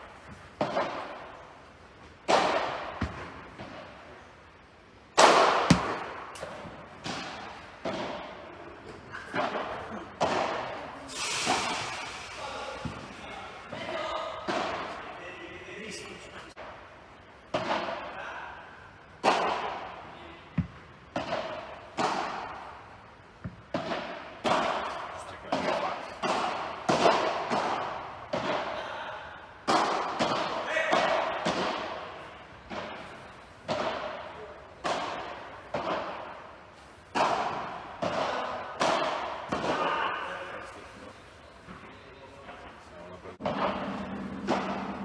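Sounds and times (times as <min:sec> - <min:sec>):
rackets hitting ball in hall: 0:00.0 - 0:45.0.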